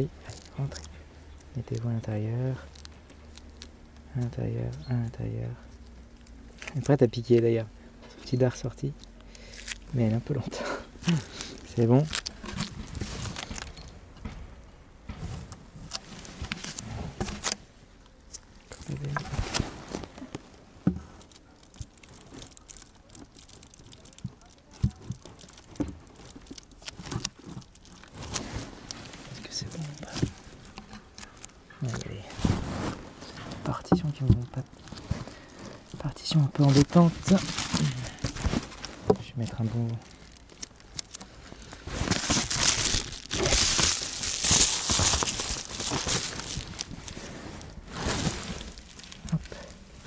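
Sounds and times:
wood knocking and scraping on wood: 19.0s - 21.3s, 36.6s - 39.3s.

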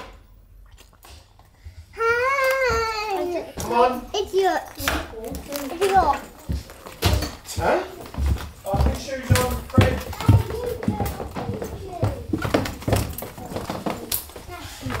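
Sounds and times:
small child's voice: 1.9s - 7.2s, 10.0s - 12.4s, 13.4s - 15.0s
footsteps on wooden stairs: 5.4s - 15.0s.

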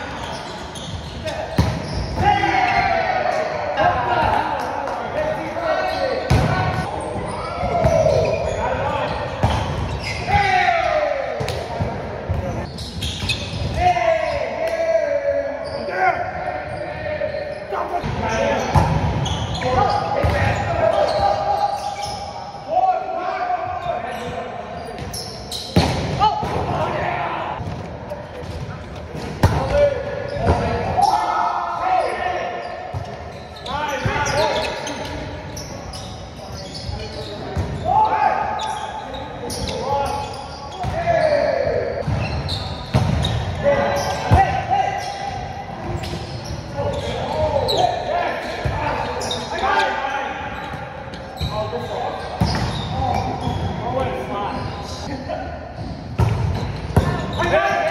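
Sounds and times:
players shouting: 1.2s - 11.7s, 29.4s - 32.7s.

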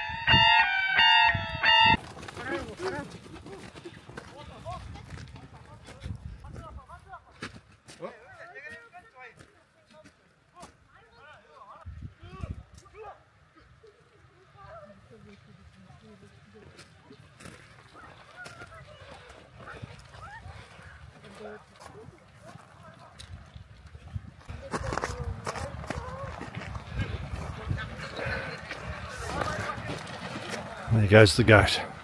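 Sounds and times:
distant shouts and calls: 0.0s - 4.1s.

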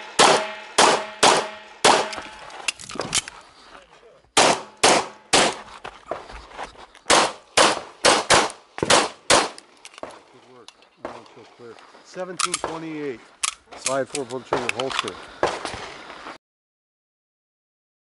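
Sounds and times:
pistol shots: 0.0s - 2.3s, 4.4s - 5.7s, 7.1s - 9.6s
person speaking: 10.2s - 15.2s.

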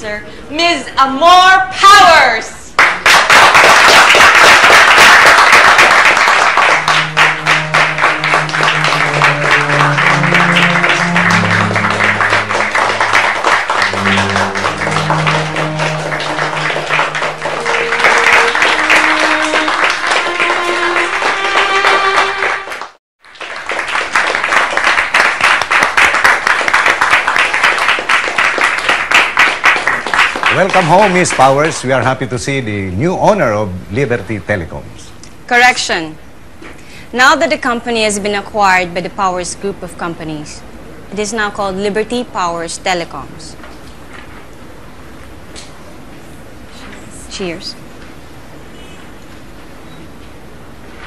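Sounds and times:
small group applauding: 2.8s - 32.0s
music of slow held notes: 5.9s - 22.9s.

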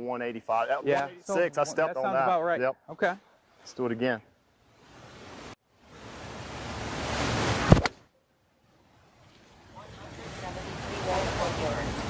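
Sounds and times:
golf club striking ball: 7.6s - 8.0s.

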